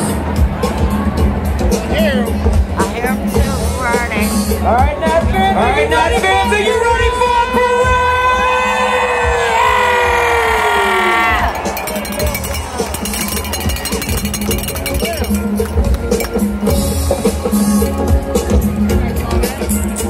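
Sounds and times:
crowd din: 0:00.0 - 0:20.0
cowbell clanks: 0:11.4 - 0:16.9
rapid hand-clapping: 0:11.6 - 0:16.5.

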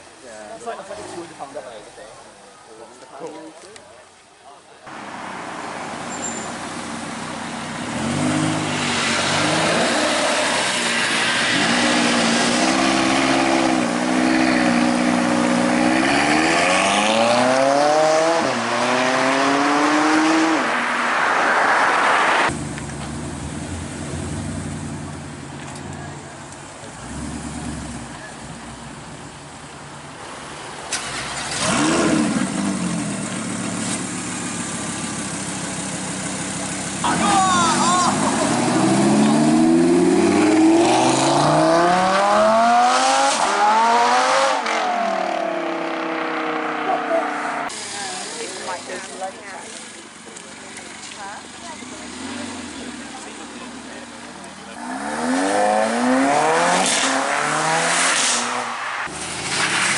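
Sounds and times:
cars driving by: 0:04.9 - 0:59.9
engine revving: 0:07.8 - 0:22.6, 0:30.9 - 0:34.0, 0:37.0 - 0:47.7, 0:54.8 - 0:59.9
car engine accelerating past: 0:07.8 - 0:25.0, 0:38.1 - 0:47.7.

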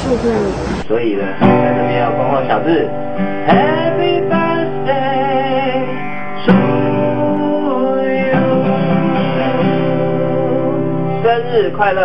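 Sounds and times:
strummed acoustic guitar: 0:00.8 - 0:12.0.

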